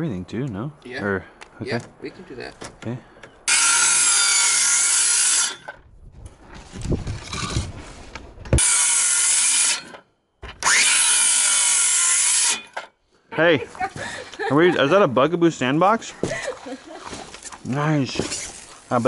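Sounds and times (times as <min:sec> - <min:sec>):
circular saw cutting wood: 0:03.5 - 0:05.8, 0:08.6 - 0:10.0, 0:10.6 - 0:12.9.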